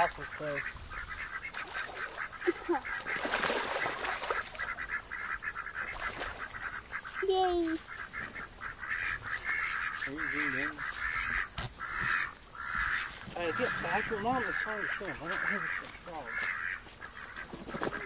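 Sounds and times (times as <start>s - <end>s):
ducks calling: 0.0s - 18.0s
steady hiss: 4.8s - 17.9s.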